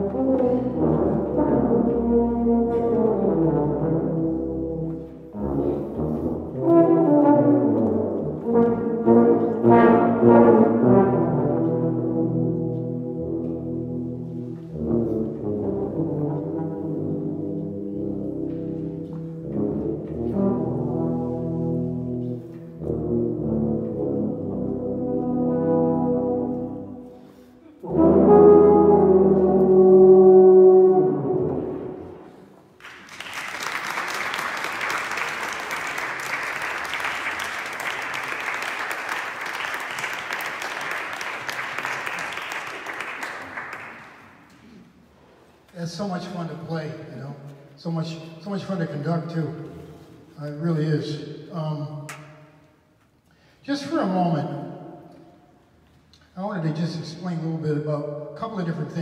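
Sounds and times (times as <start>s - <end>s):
low brass ensemble playing: 0.0s - 59.0s
audience applause: 32.8s - 44.4s.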